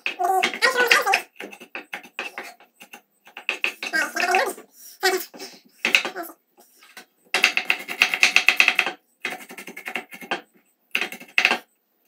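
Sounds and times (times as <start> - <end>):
knife chopping on wooden board: 7.4 - 11.6.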